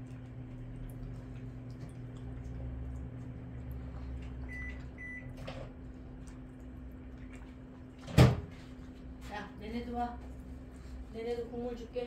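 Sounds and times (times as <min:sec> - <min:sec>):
dogs eating from bowls: 0:00.0 - 0:09.1
low appliance hum: 0:00.0 - 0:12.0.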